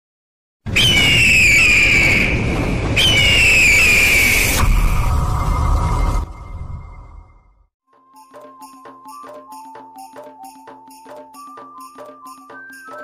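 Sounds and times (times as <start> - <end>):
high whistling tone sliding down: 0.8 - 7.3.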